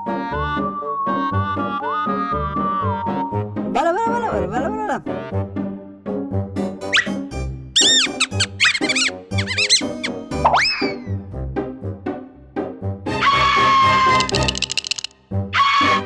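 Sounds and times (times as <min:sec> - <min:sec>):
cartoon music with bass pulse: 0:00.0 - 0:11.9
squeaky cartoon mouse voice: 0:07.8 - 0:11.1.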